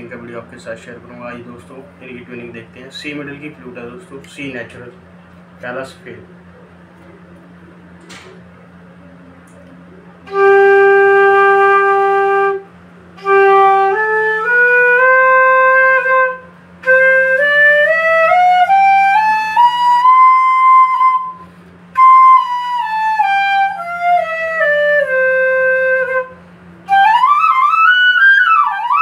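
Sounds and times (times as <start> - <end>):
bamboo flute playing scale: 10.2 - 29.0.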